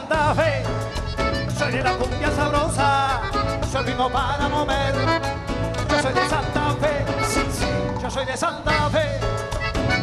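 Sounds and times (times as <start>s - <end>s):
live cumbia band playing: 0.0s - 10.0s
person singing: 1.6s - 9.4s.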